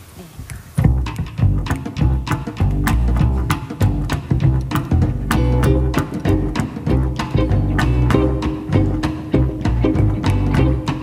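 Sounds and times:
drums: 0:00.0 - 0:11.0
jazz band playing: 0:00.8 - 0:11.0
plucked upright bass: 0:00.8 - 0:11.0.

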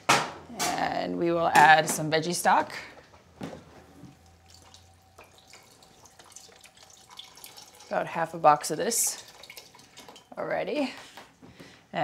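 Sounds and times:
liquid pouring into metal pot: 0:03.8 - 0:10.4.

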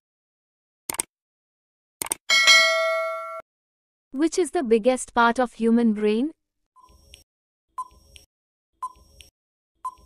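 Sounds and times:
short clicks: 0:00.9 - 0:01.1
bell chime: 0:02.3 - 0:03.4.

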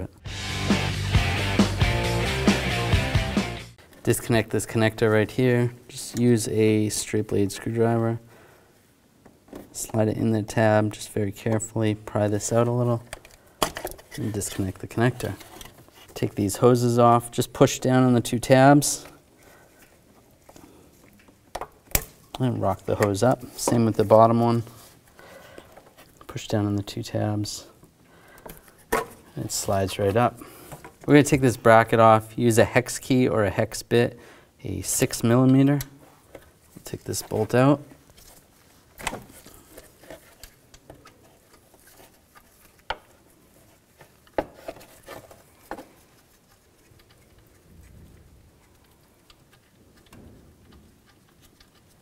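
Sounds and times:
faint handling noise: 0:09.2 - 0:32.2, 0:34.8 - 0:52.0.

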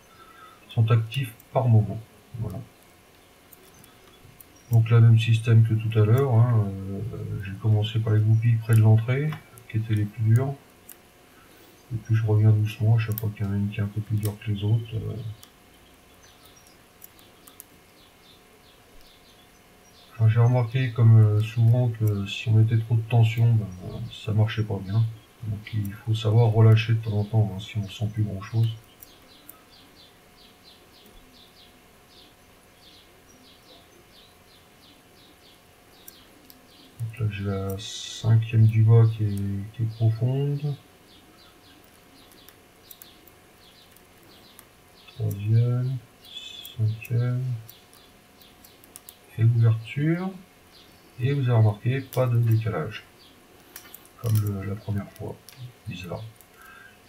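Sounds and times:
faint bird chirping: 0:00.0 - 0:57.0.

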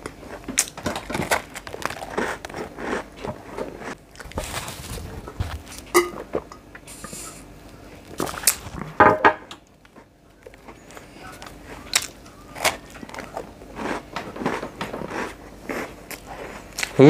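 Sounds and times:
biting and chewing rusk: 0:00.0 - 0:06.4, 0:09.8 - 0:17.0.

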